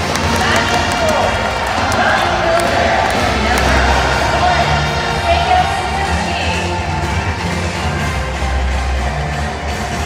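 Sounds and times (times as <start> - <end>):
crowd noise: 0.0 - 10.0
music over stadium loudspeakers: 0.0 - 10.0.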